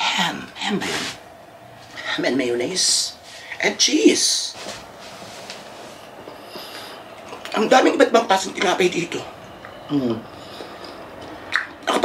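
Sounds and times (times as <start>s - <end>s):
low background noise: 0.0s - 12.0s
quiet chewing of bread: 5.4s - 7.6s.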